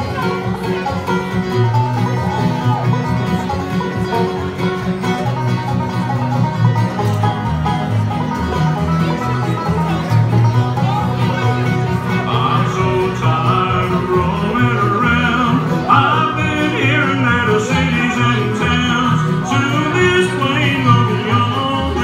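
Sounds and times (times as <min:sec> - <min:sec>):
live band playing: 0:00.0 - 0:22.0
plucked strings: 0:00.0 - 0:22.0
steady bass line: 0:00.0 - 0:22.0.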